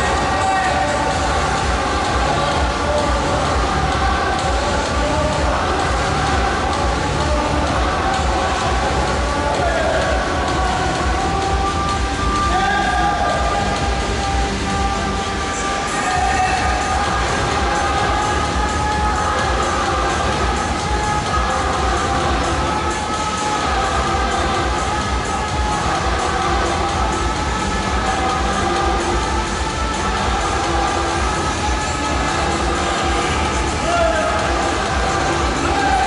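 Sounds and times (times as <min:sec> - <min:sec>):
crowd noise: 0:00.0 - 0:36.0.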